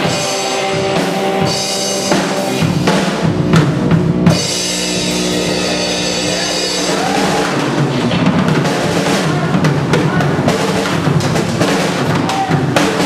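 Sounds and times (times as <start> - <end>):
drum kit playing rock: 0.0 - 13.0.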